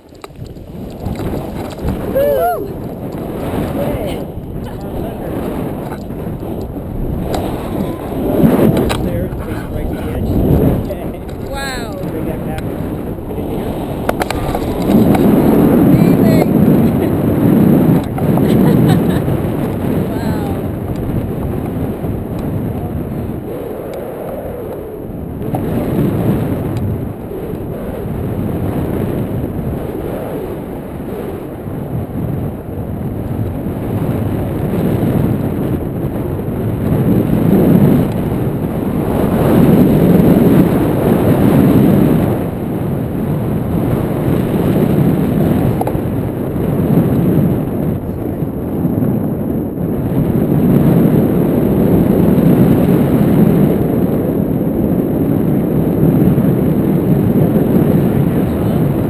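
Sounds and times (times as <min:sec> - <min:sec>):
wind rushing on microphone: 0:00.0 - 0:59.0.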